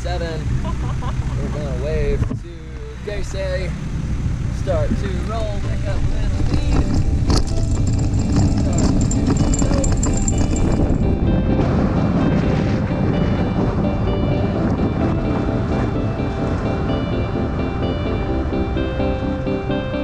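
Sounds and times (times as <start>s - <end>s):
wind rushing over microphone: 0.2s - 20.0s
background music: 5.6s - 20.0s
cart rolling across grass: 6.1s - 11.0s.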